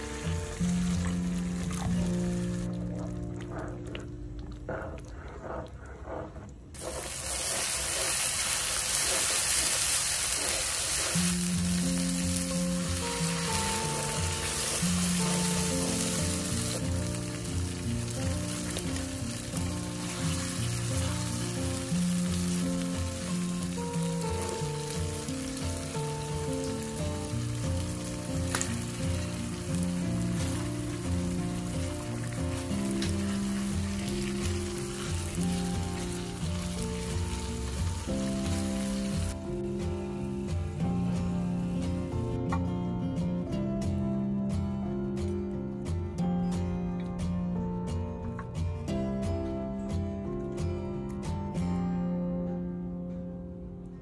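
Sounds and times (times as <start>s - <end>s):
background music: 0.0s - 54.0s
paste sizzling in hot oil: 6.7s - 39.4s.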